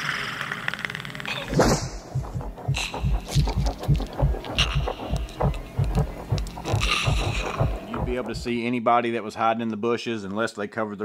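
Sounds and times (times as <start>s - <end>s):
dark film score: 1.5s - 8.6s
rapid low throbbing thumps: 1.6s - 8.6s
scattered clicks: 2.1s - 8.5s.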